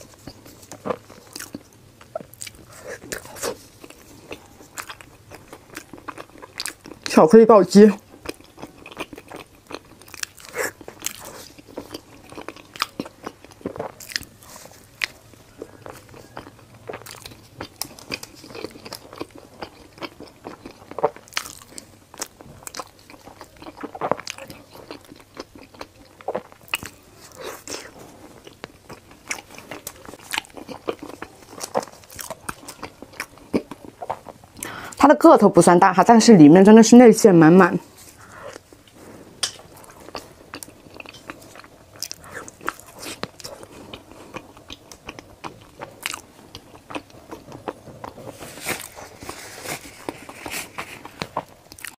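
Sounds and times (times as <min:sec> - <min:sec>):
close chewing mouth sounds: 0:00.0 - 0:07.2, 0:07.8 - 0:35.0, 0:37.6 - 0:51.9.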